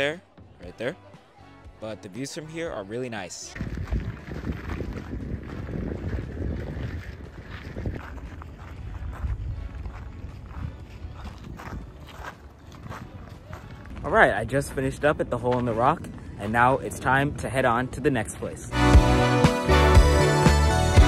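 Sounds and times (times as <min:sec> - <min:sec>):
wind rumble on microphone: 0:03.5 - 0:18.7.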